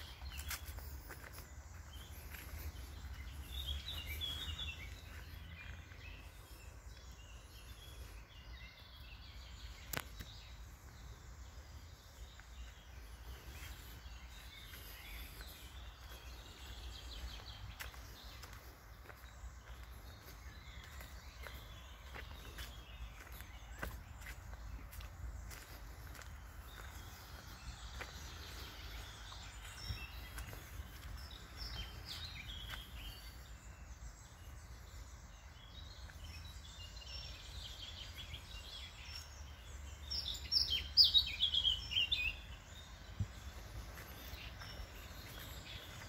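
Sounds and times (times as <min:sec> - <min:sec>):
footsteps on dirt path: 0:00.0 - 0:46.0
woodland birdsong: 0:00.0 - 0:46.0.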